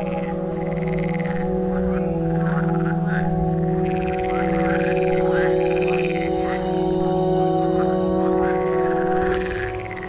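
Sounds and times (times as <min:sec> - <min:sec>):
frog-like croaks: 0:00.0 - 0:10.0
low drone: 0:00.0 - 0:10.0.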